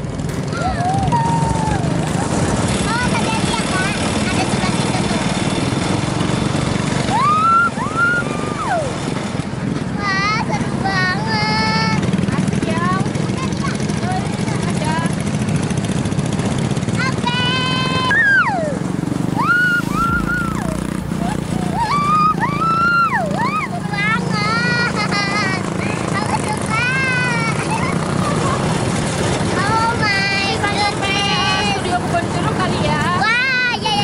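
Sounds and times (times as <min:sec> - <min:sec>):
small go-kart engine running: 0:00.0 - 0:34.0
girl shrieking and laughing: 0:00.6 - 0:02.4, 0:07.1 - 0:09.0, 0:18.0 - 0:26.0.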